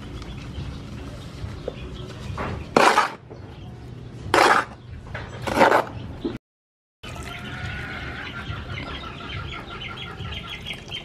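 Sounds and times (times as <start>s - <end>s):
bottle glugging: 7.0s - 7.4s.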